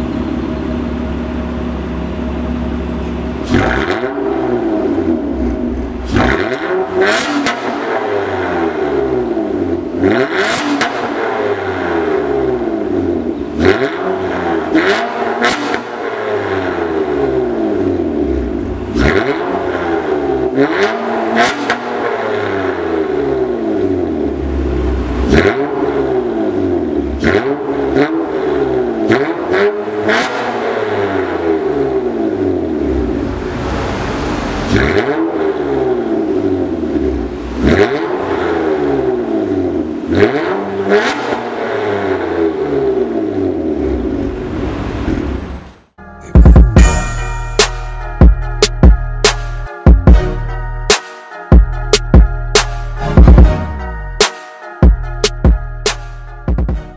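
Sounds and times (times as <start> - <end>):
car engine revving: 0.0 - 45.8.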